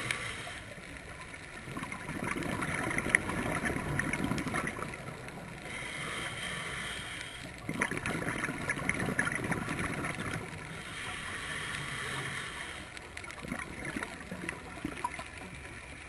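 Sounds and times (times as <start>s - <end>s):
regulator inhalation hiss: 0.0s - 0.8s, 5.4s - 7.6s, 10.7s - 13.1s
regulator bubbling exhalation: 1.7s - 5.0s, 7.6s - 10.5s, 13.4s - 15.2s.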